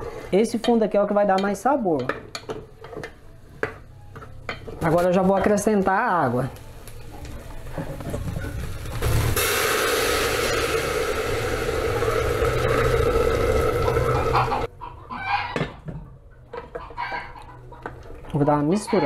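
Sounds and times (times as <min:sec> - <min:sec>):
water pouring from a kettle: 0:09.1 - 0:14.7
chicken clucking: 0:16.8 - 0:17.9.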